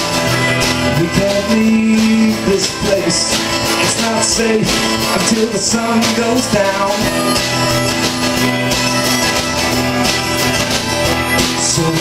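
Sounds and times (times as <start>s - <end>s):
person singing: 0.0s - 8.6s, 10.9s - 12.0s
acoustic guitar: 0.0s - 12.0s
bass guitar: 0.0s - 12.0s
drums: 0.0s - 12.0s
harmonica: 0.0s - 12.0s.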